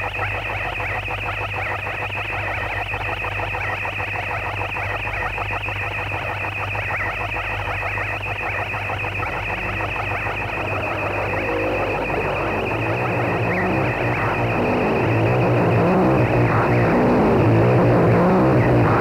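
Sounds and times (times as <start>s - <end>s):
distorted crackling electronic noise: 0.0s - 19.0s
thin high whine: 6.8s - 19.0s
low hum: 7.1s - 19.0s.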